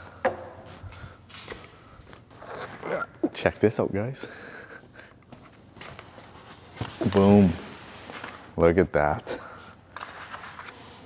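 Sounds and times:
shuffling handling sounds: 0:05.2 - 0:11.0.

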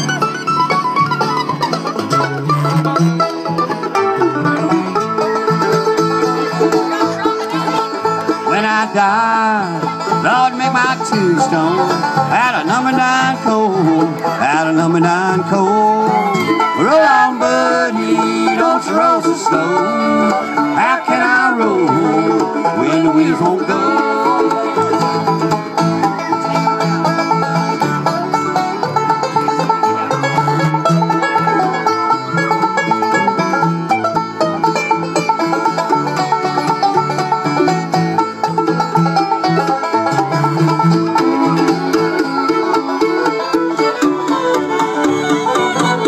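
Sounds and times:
banjo picking fast: 0:00.0 - 0:46.0
bluegrass band playing: 0:00.0 - 0:46.0
walking bass line: 0:00.0 - 0:46.0.

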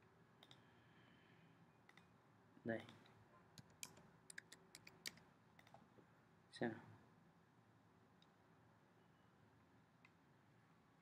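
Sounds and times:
faint computer mouse clicks: 0:00.4 - 0:00.6, 0:01.9 - 0:02.1.

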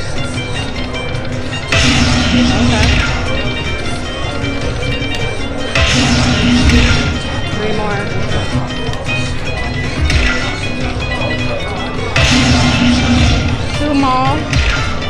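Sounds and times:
slot machine bonus music: 0:00.0 - 0:15.0.

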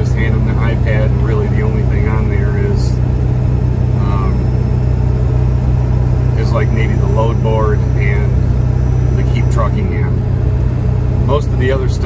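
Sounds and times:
truck engine and road noise: 0:00.0 - 0:12.0.

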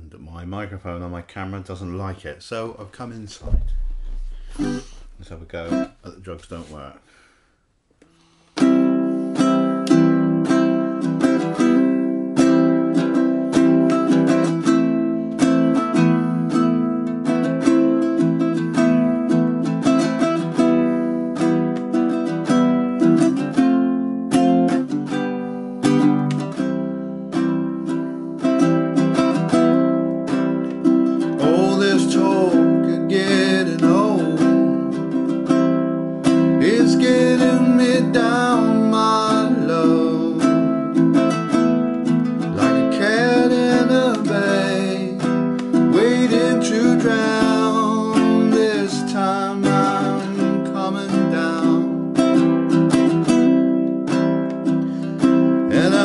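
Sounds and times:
ukulele strumming chords: 0:03.4 - 0:06.8, 0:08.1 - 0:56.0
man singing: 0:31.4 - 0:35.2, 0:36.5 - 0:41.0, 0:42.6 - 0:52.2, 0:55.7 - 0:56.0.

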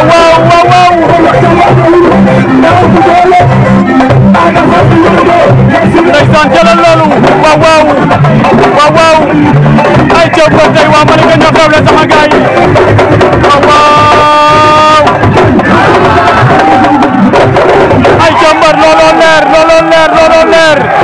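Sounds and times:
drums playing fast rhythm: 0:00.0 - 0:21.0
person singing: 0:13.5 - 0:17.1.

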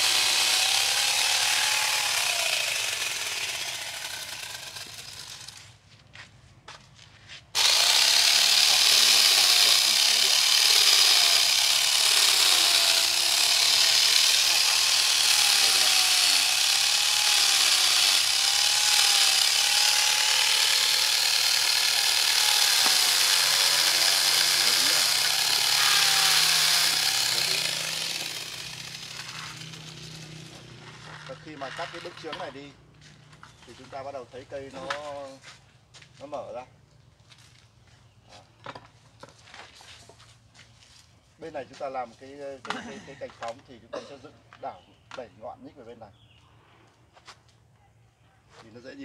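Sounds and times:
chainsaw cutting wood: 0:00.0 - 0:05.7, 0:07.6 - 0:32.6.

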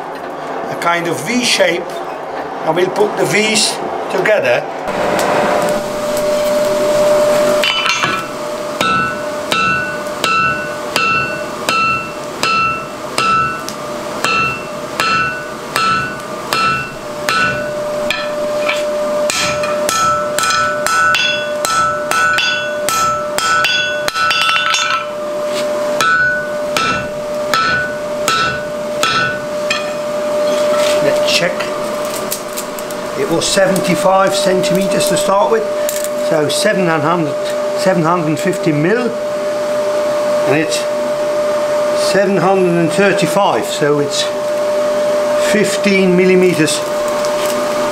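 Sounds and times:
hammer striking hot metal: 0:04.9 - 0:25.2, 0:26.0 - 0:31.0
anvil ringing: 0:07.5 - 0:25.2, 0:26.0 - 0:30.9.

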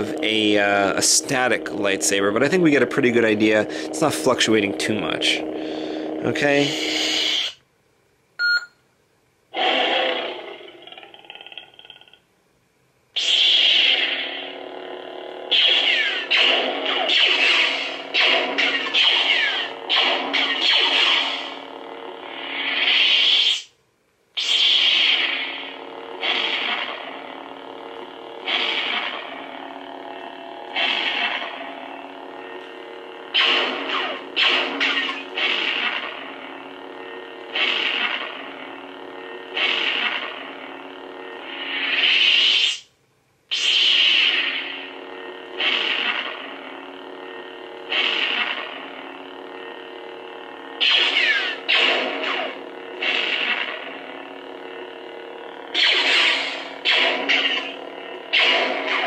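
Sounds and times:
lightsaber electric hum: 0:00.0 - 0:08.1, 0:09.4 - 0:59.0.

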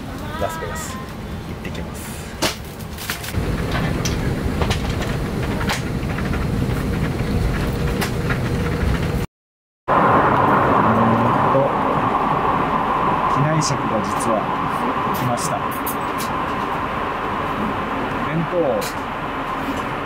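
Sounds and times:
low rumble of engines and airflow: 0:00.0 - 0:09.3, 0:09.9 - 0:20.0
steady hum: 0:09.9 - 0:20.0.

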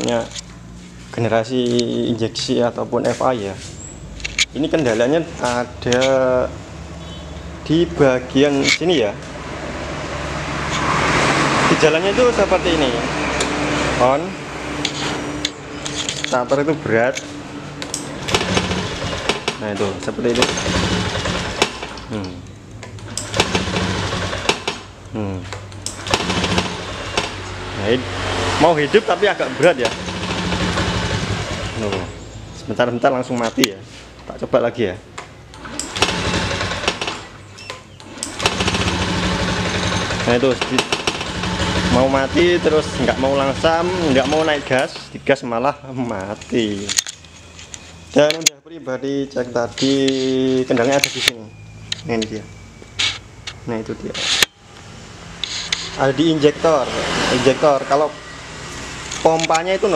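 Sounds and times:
scooter engine starting: 0:08.0 - 0:22.4, 0:23.0 - 0:25.0, 0:25.8 - 0:32.2, 0:35.5 - 0:45.2, 0:54.2 - 0:59.9.

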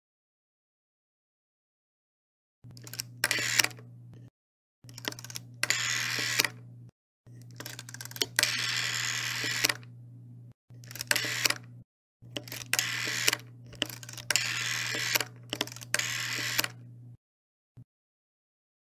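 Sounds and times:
steady low hum: 0:02.7 - 0:04.3, 0:05.0 - 0:11.8, 0:12.4 - 0:17.2
rotary dial clicking and whirring: 0:02.7 - 0:06.6, 0:07.3 - 0:09.9, 0:10.7 - 0:16.9.

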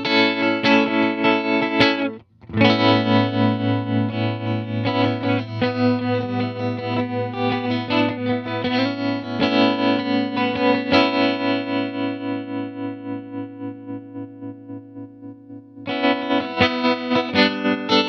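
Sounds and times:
electric guitar tremolo chords: 0:00.0 - 0:18.0.

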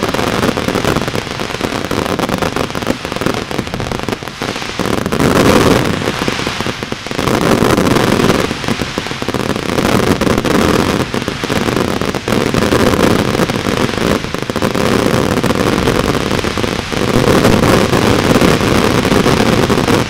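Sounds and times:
fireworks crackling: 0:00.0 - 0:20.0.

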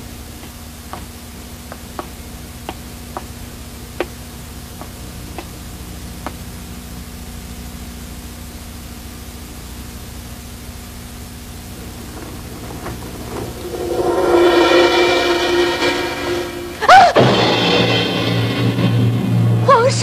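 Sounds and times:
steady low hum: 0:00.0 - 0:19.8
background music held notes: 0:12.2 - 0:18.0.

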